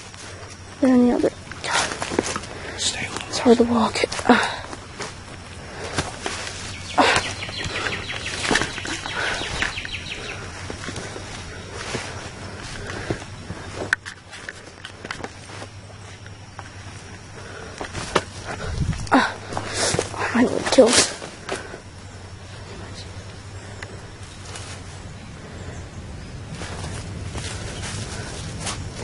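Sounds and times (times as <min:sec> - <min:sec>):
footsteps on dirt trail: 0:00.0 - 0:25.2, 0:26.4 - 0:29.0
dry leaves and twigs crunching: 0:00.0 - 0:29.0.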